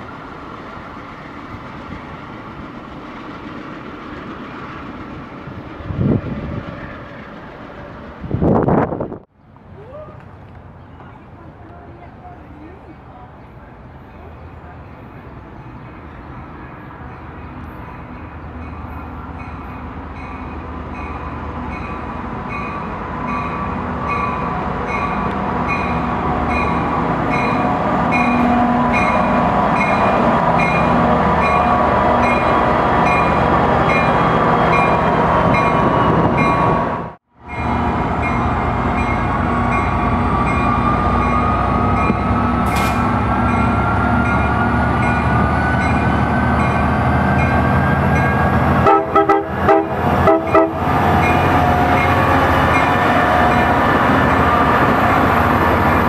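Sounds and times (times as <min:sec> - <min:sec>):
diesel locomotive running: 0:00.0 - 0:56.0
locomotive bell ringing: 0:17.2 - 0:36.7, 0:37.4 - 0:42.4, 0:43.4 - 0:48.6, 0:50.3 - 0:53.9.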